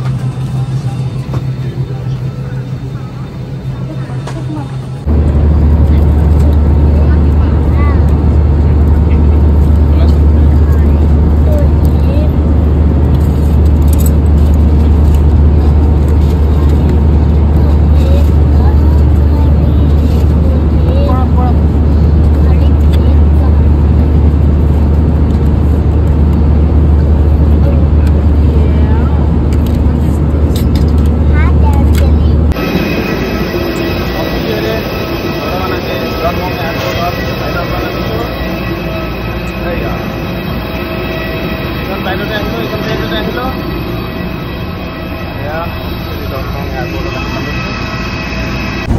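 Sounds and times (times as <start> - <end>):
faint voices: 0.0 - 12.5, 31.2 - 48.9
airliner cabin drone: 0.0 - 48.9.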